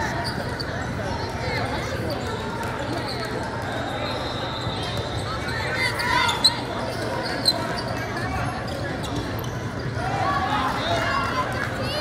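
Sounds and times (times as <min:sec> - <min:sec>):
sneakers squeaking: 0:00.0 - 0:01.0, 0:02.0 - 0:10.0
chatter of many voices: 0:00.0 - 0:12.0.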